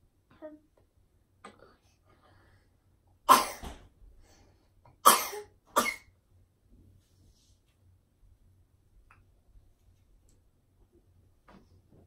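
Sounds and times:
child coughing: 0:03.3 - 0:03.8, 0:05.0 - 0:06.1.

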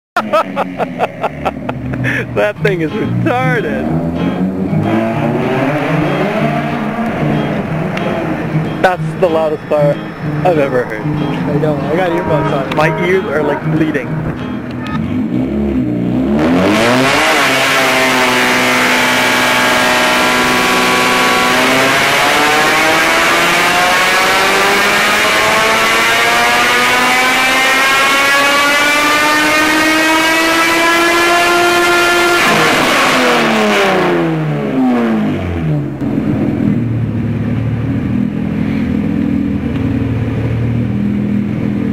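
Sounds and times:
loud car exhaust: 0:00.2 - 0:41.9.

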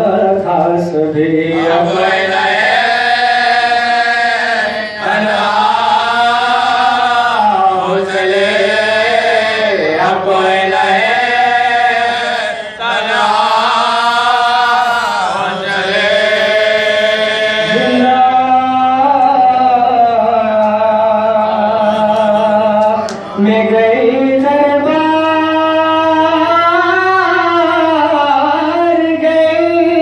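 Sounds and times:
men chanting a lament: 0:00.0 - 0:30.0.

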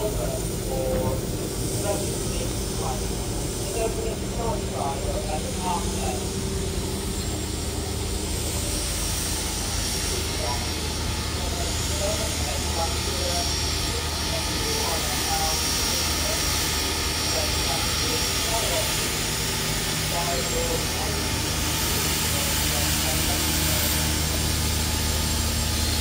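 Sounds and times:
people's voices: 0:00.0 - 0:26.0
steam locomotive hissing: 0:00.0 - 0:26.0.

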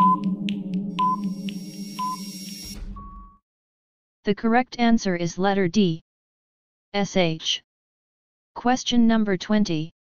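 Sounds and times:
timer ticks and beeps: 0:00.0 - 0:03.3
short final tone: 0:00.0 - 0:03.4
steady electronic drone: 0:00.0 - 0:03.4.

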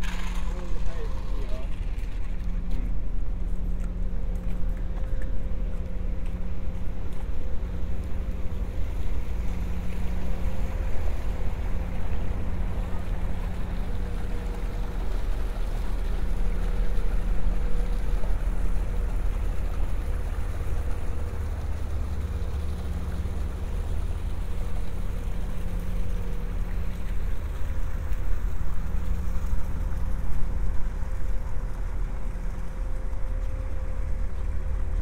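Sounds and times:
boat engine idling: 0:00.0 - 0:35.0.

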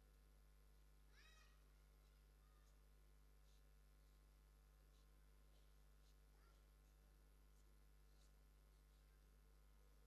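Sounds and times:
faint high-pitched call: 0:01.1 - 0:01.6.

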